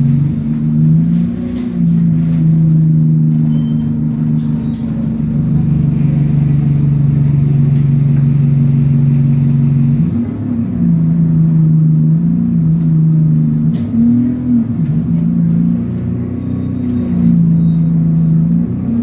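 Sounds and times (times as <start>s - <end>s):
bus engine drone: 0.0s - 19.0s.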